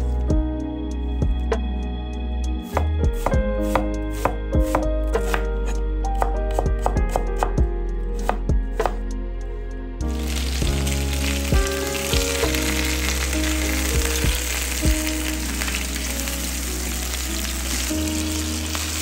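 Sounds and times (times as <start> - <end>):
knife chopping on wooden board: 2.8 - 5.5, 8.2 - 9.0
chicken sizzling in frying pan: 10.2 - 19.0.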